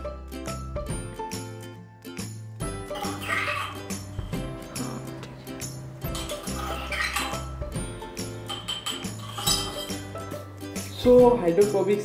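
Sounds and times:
background music: 0.0 - 12.0
metal spoon clinking against glass: 6.0 - 7.5, 8.2 - 10.2.

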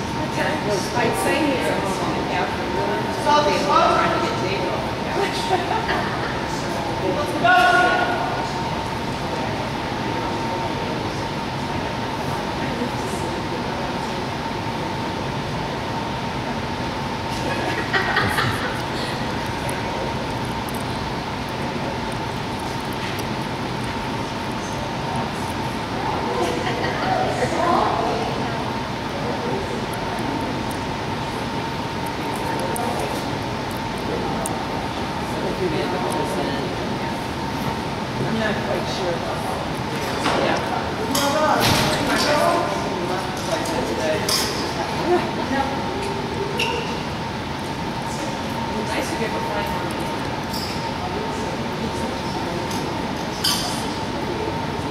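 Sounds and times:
ventilation fans running: 0.0 - 54.9
voices echoing in a hall: 0.0 - 54.9.

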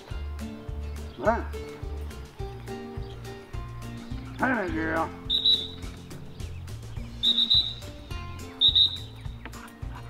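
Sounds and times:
dog whistle high pips: 5.3 - 5.8, 7.2 - 8.0, 8.6 - 9.2.

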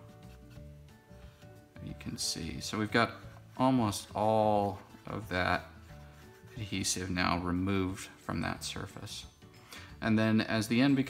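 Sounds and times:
cotton bud rubbing cardboard: 0.0 - 0.9, 3.0 - 7.7
soft background music: 0.0 - 11.0.

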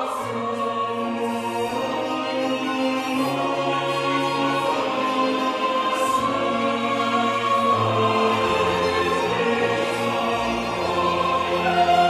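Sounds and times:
choir singing with orchestra: 0.0 - 12.0.

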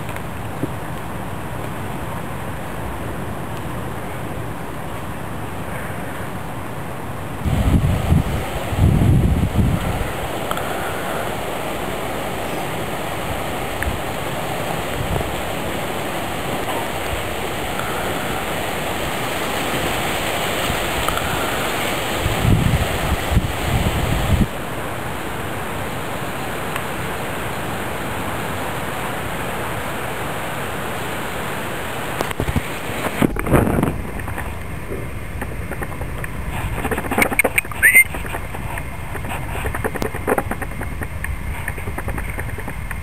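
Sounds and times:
steady rushing noise: 0.0 - 43.0
strong low rumbles: 7.4 - 11.2.

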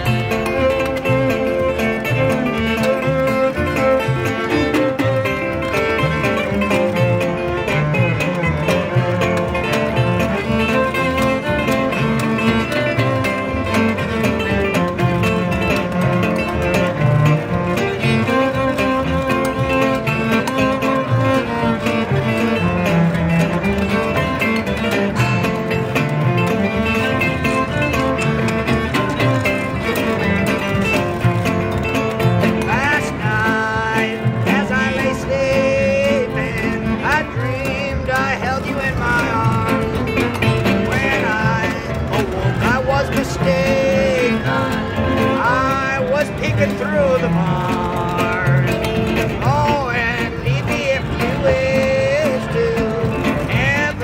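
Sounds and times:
bowed cello: 0.0 - 54.0
strummed guitar: 0.0 - 54.0
washboard rhythm: 0.0 - 54.0.

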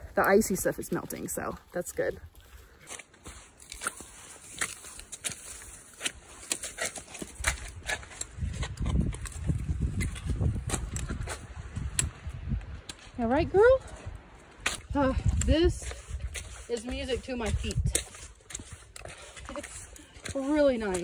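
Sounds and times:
boots crunching in slush: 0.4 - 8.4, 15.6 - 21.0.

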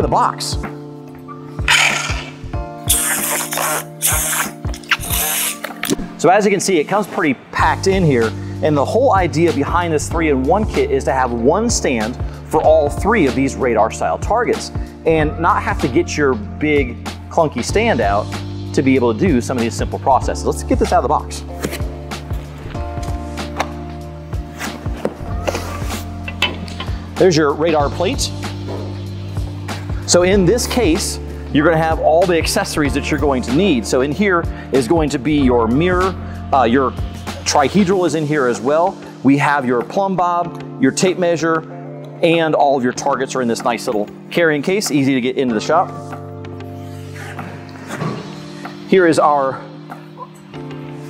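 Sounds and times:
background music: 0.0 - 51.0
packing tape ripping: 1.7 - 5.9.

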